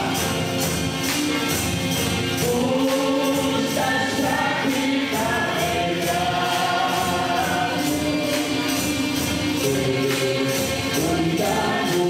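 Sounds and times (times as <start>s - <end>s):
percussion steady beat: 0.0s - 12.0s
tambourines shaking: 0.0s - 12.0s
voices singing a hymn: 2.4s - 12.0s.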